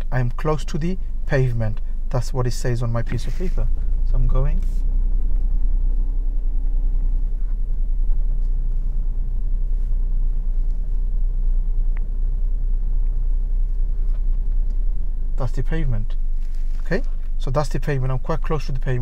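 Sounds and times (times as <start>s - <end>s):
car engine running low: 0.0s - 19.0s.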